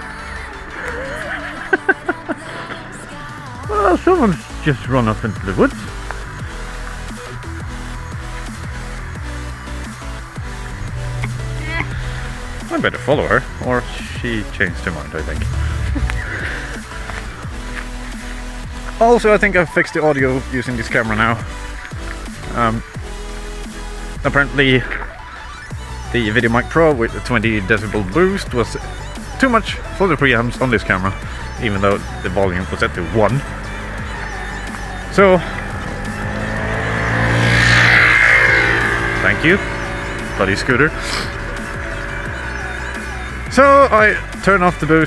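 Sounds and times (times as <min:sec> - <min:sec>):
background music with held notes: 0:00.0 - 0:45.0
motor scooter engine passing: 0:00.1 - 0:23.0, 0:30.8 - 0:45.0.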